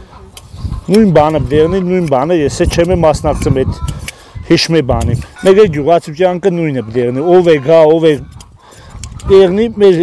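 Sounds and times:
shears snipping through fleece: 0.4 - 3.2
man talking: 0.8 - 8.3, 9.2 - 10.0.

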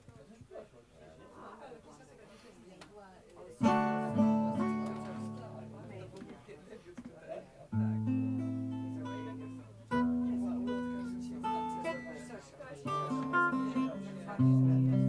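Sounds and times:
acoustic guitar chords ringing: 3.6 - 6.1, 7.7 - 15.0.

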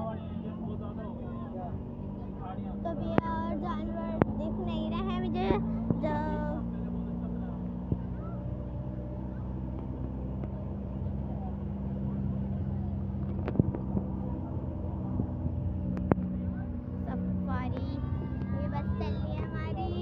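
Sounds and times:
vehicle engine droning: 0.0 - 20.0.

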